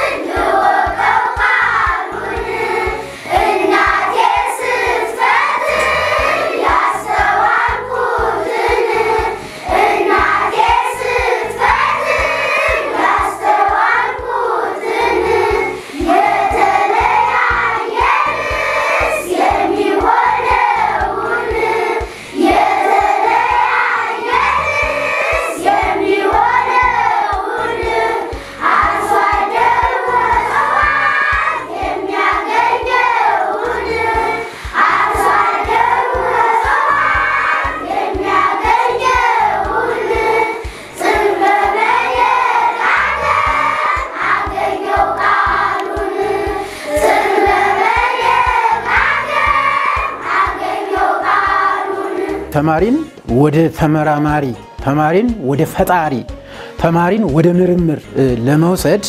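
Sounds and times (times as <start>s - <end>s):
choir singing: 0.0s - 52.6s.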